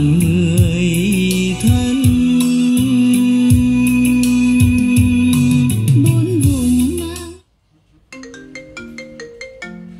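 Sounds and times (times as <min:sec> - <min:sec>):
song music on stereo: 0:00.0 - 0:09.9.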